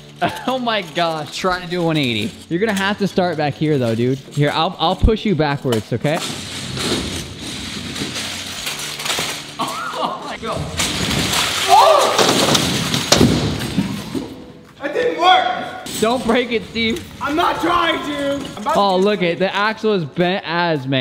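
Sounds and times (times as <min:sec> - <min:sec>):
wheels rolling on concrete: 0:00.0 - 0:05.4, 0:06.0 - 0:09.6, 0:15.9 - 0:19.3.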